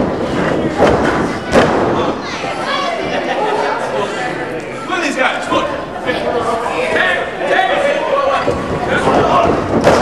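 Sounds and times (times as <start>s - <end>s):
wrestling ring impacts: 0.0s - 2.2s, 8.4s - 10.0s
crowd voices and shouting: 0.0s - 10.0s.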